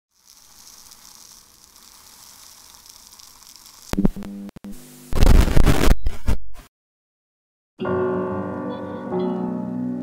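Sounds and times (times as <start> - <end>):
crackling static hiss: 0.1 - 6.0.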